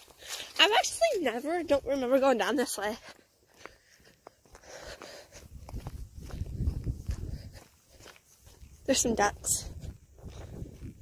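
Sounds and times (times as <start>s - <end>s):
footsteps on gravelly asphalt: 0.0s - 11.0s.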